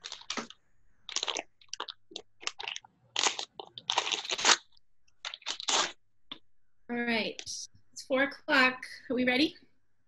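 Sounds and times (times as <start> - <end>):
crunching and rustling: 0.0 - 6.0.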